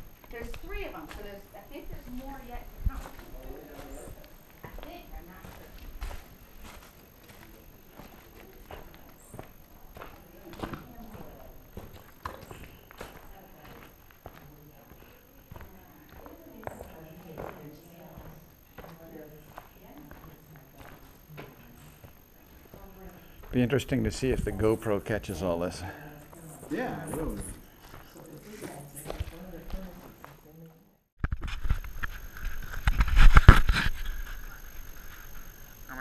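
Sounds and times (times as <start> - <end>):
faint voices talking: 0.0 - 31.1.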